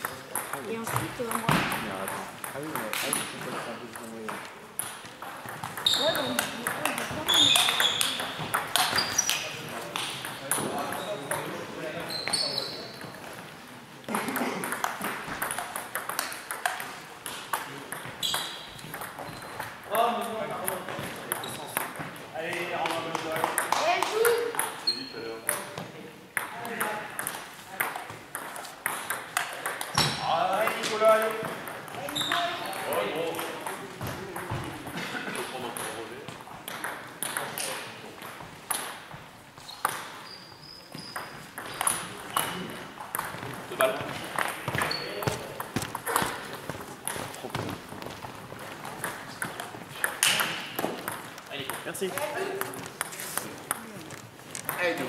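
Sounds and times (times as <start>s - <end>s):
table tennis ball tapping: 0.0s - 11.6s, 14.2s - 25.8s, 26.4s - 39.2s, 39.8s - 40.2s, 41.0s - 53.9s, 54.6s - 55.0s
voices in a hall: 0.0s - 55.0s.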